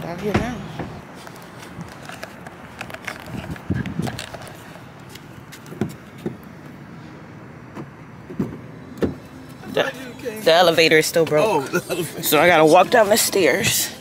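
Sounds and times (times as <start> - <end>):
outdoor background noise: 0.0 - 14.0
camera handling knocks and rustles: 0.8 - 6.4.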